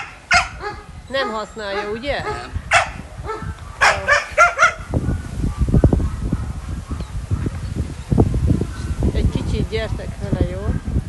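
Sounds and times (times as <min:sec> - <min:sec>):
dog barking: 0:00.0 - 0:07.6.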